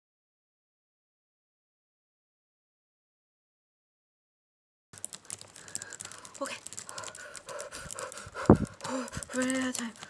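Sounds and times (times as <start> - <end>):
woman panting: 5.5 - 10.0.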